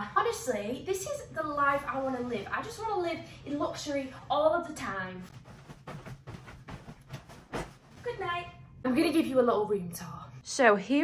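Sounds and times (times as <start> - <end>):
bedding rustling: 4.8 - 8.5
soft thumps on a mattress: 5.5 - 8.0.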